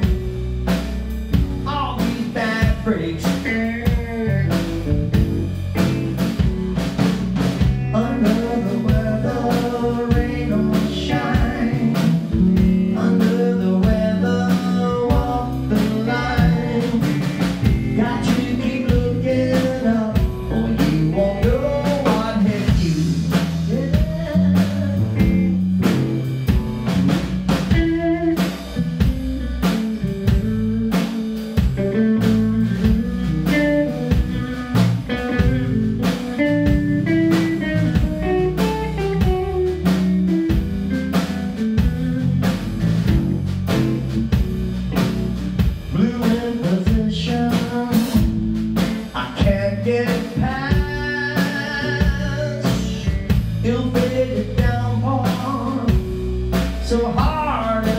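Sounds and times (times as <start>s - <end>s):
drum kit beat: 0.0s - 57.9s
electric guitars: 0.0s - 57.9s.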